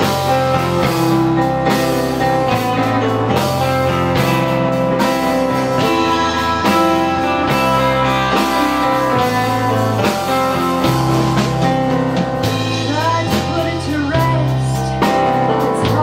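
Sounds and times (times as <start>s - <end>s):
bass notes: 0.0s - 16.0s
drums: 0.0s - 16.0s
electric guitar playing: 0.0s - 16.0s
keyboard chords: 0.0s - 16.0s.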